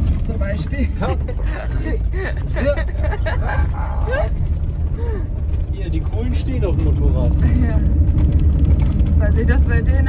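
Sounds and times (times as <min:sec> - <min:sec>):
tyres and engine rumbling on gravel: 0:00.0 - 0:10.0.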